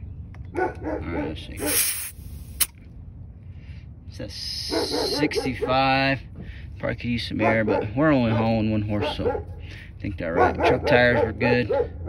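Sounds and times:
air hissing from tire valve: 1.6s - 2.8s.

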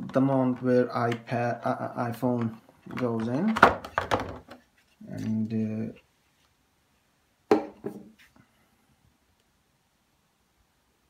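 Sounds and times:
plastic mount knocking on tabletop: 7.5s - 8.1s.

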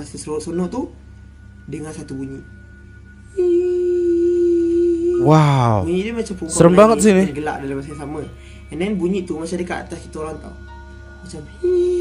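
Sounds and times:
woman humming a long note: 3.4s - 5.9s.

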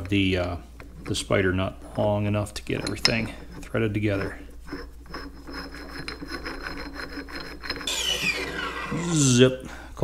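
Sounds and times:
metal parts scraping and clicking: 2.6s - 9.0s.

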